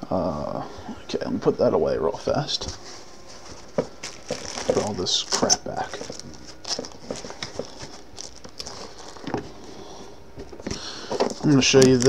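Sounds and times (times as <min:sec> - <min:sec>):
rustling and crinkling of packaging: 0:02.5 - 0:12.0.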